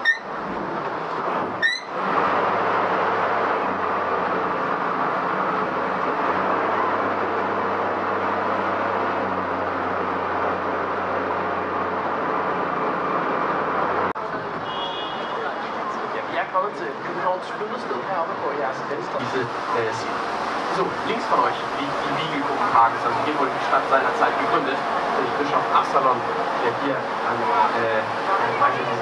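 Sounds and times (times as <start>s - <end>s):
boat engine running: 0.0s - 14.2s, 19.3s - 29.0s.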